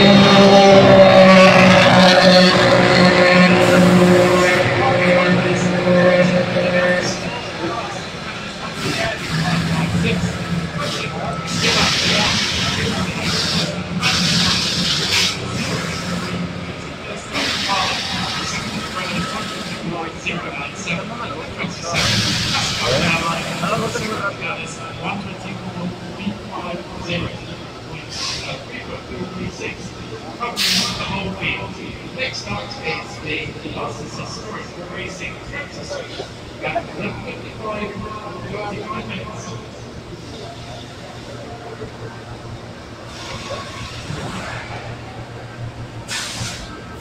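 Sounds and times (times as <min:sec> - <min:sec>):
race car engine idling: 0:00.0 - 0:47.0
voices: 0:00.0 - 0:47.0
short bursts of hiss: 0:46.1 - 0:46.7.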